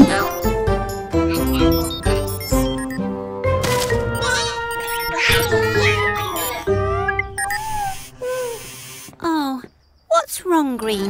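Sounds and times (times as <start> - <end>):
bright cartoon music: 0.0 - 8.5
chirpy character vocal sounds: 1.2 - 2.7, 4.1 - 8.8.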